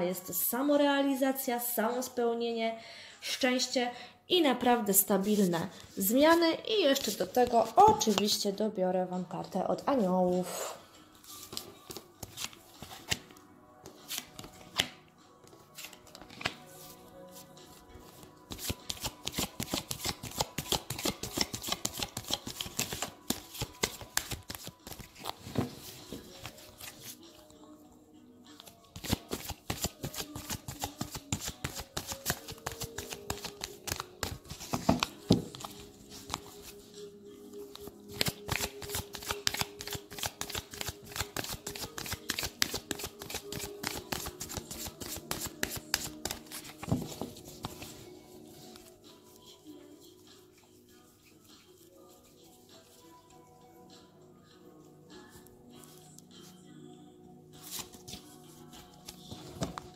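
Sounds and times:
soft background music: 0:00.0 - 0:59.9
cards being shuffled: 0:11.2 - 0:17.0, 0:18.5 - 0:27.2, 0:28.6 - 0:36.8, 0:37.7 - 0:48.0, 0:57.6 - 0:59.9.

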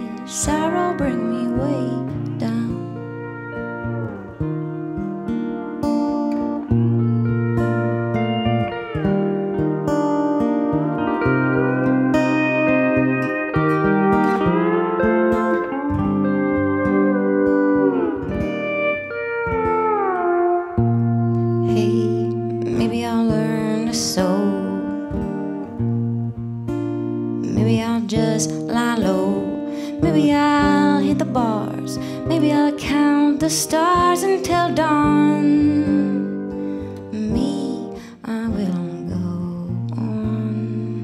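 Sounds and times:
acoustic guitar accompaniment: 0:00.0 - 0:41.0
pedal steel guitar sliding notes: 0:00.0 - 0:41.0.

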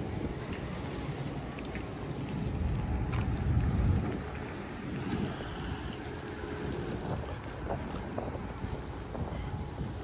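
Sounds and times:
wind blowing across microphone: 0:00.0 - 0:10.0.

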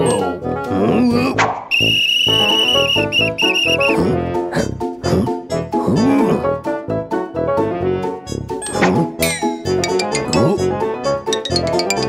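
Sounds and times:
whistle blasts: 0:01.7 - 0:04.0.

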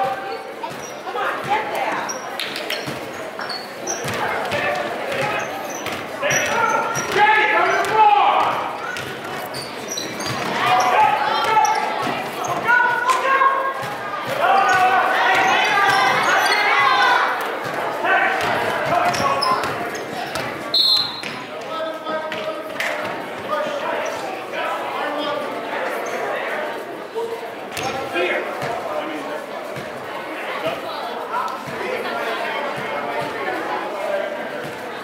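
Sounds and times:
sneaker squeaks: 0:00.0 - 0:13.1, 0:13.7 - 0:17.8, 0:18.4 - 0:21.6, 0:25.9 - 0:26.4
people shouting: 0:10.5 - 0:17.4.

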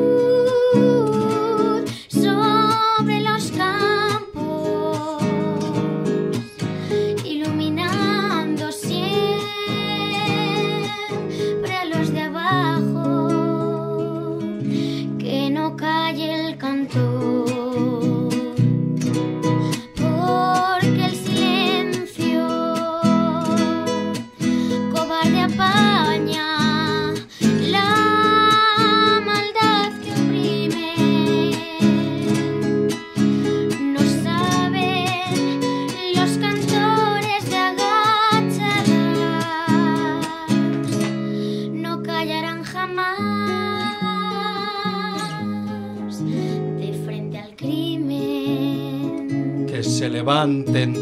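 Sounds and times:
person singing with vibrato: 0:00.0 - 0:18.7, 0:19.5 - 0:51.0
classical guitar playing: 0:00.0 - 0:51.0.

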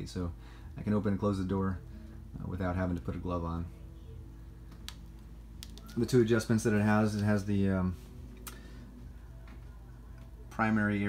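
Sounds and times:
low hum: 0:00.0 - 0:11.0
wood fire crackling: 0:04.6 - 0:08.8.

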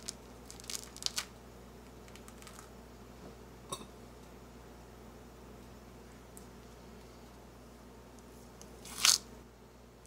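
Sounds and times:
grapefruit tearing: 0:08.8 - 0:09.3.

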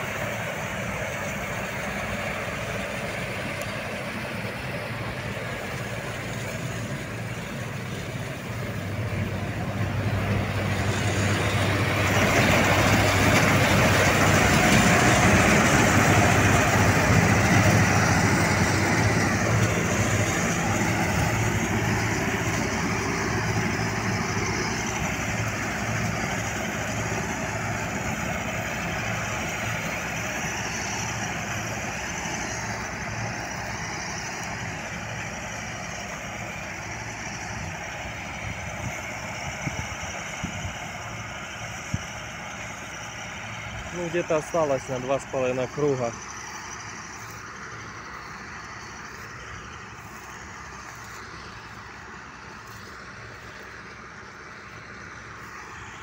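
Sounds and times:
combine harvester running: 0:00.0 - 0:56.0.

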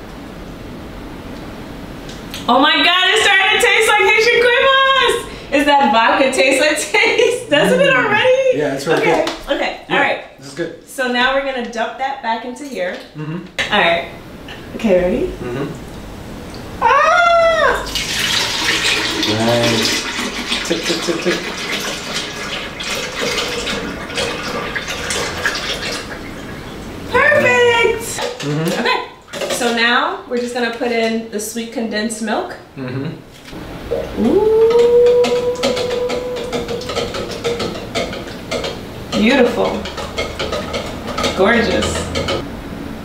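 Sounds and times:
woman exclaiming: 0:07.0 - 0:09.2, 0:16.8 - 0:17.9, 0:27.1 - 0:29.0, 0:34.2 - 0:36.9
long held note: 0:33.9 - 0:37.0.

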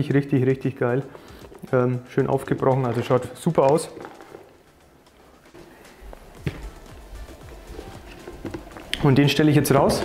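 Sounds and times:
quiet background music: 0:00.0 - 0:10.0
plastic buckets knocking: 0:02.3 - 0:04.6, 0:08.0 - 0:10.0
footsteps: 0:02.8 - 0:10.0.

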